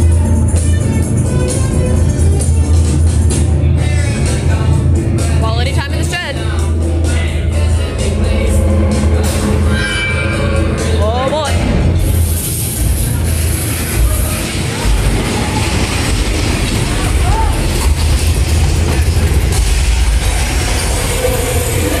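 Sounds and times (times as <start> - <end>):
ride cars rumbling on track: 11.6 - 22.0.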